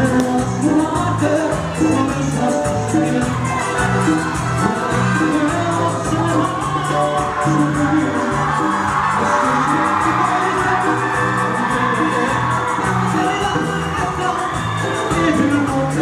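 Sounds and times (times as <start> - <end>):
live band playing latin pop: 0.0 - 16.0
person singing: 0.0 - 16.0
crowd whooping: 3.0 - 16.0.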